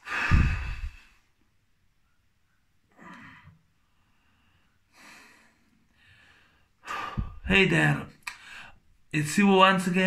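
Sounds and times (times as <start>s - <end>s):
man sighing: 0.0s - 1.1s.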